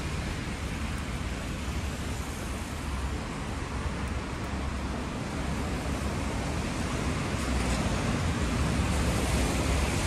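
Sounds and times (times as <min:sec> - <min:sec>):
cars driving on wet road: 0:00.0 - 0:10.0.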